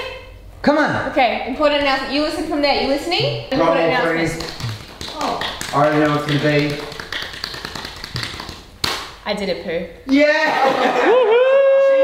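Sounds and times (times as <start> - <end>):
loud sharp crack: 8.2 - 9.2.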